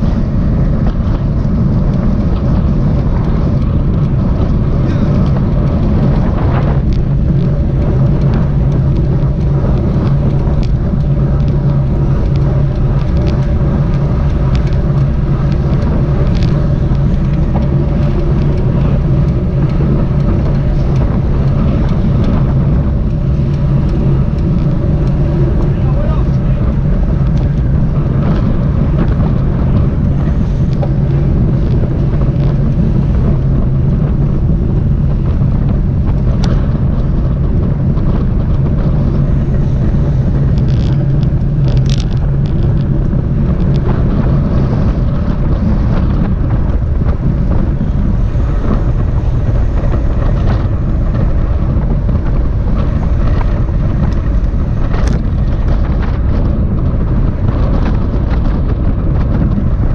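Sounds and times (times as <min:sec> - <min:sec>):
bike tyre noise: 0:00.0 - 0:59.9
wind rush on microphone: 0:00.0 - 0:59.9.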